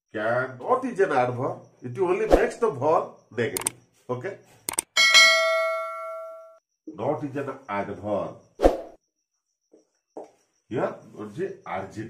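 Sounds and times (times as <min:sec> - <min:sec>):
bell-like notification ding: 0:05.0 - 0:06.6.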